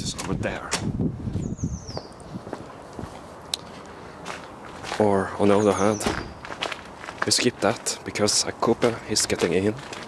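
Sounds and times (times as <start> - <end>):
footsteps on paved street: 0.0 - 10.0.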